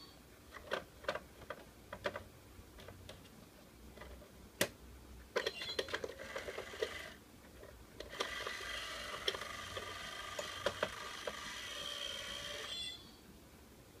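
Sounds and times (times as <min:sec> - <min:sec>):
small motor and gears whirring: 0:08.1 - 0:13.0.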